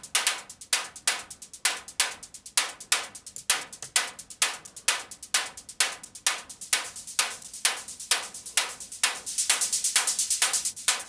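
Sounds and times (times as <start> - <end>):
synthesized hi-hat loop: 0.0 - 11.0.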